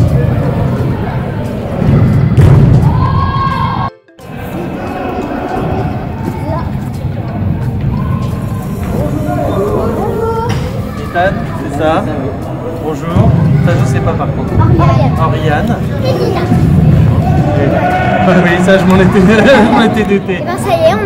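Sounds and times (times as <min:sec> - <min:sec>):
background music: 0:00.0 - 0:21.0
voices: 0:04.2 - 0:21.0.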